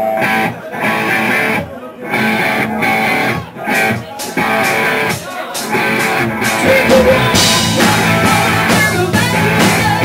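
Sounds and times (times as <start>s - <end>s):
rock band playing live: 0.0s - 10.0s
loud electric guitar chords: 6.2s - 10.0s.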